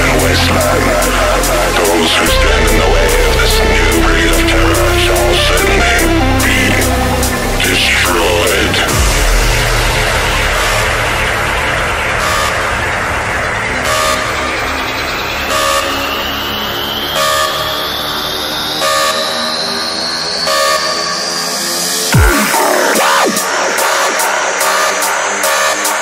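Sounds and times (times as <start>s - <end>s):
rising synth tone: 0.0s - 25.1s
horn-like synth chords: 0.0s - 26.0s.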